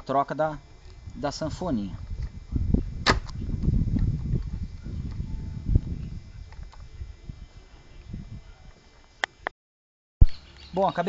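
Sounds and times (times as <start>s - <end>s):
loud thump: 3.0s - 3.4s.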